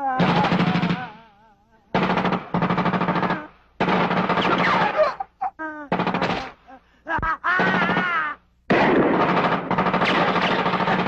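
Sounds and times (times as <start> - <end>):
automatic gunfire: 0.2 - 1.2, 2.0 - 5.1, 5.9 - 6.6, 7.6 - 11.0.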